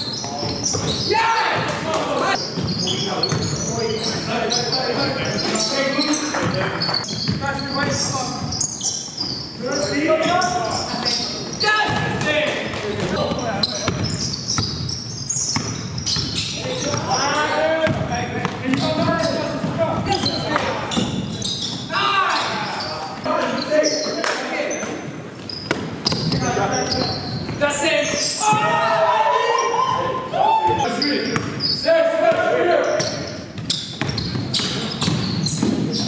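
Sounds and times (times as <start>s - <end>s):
players shouting in echoing gym: 0.0s - 36.0s
basketball bouncing on hardwood: 15.5s - 17.0s.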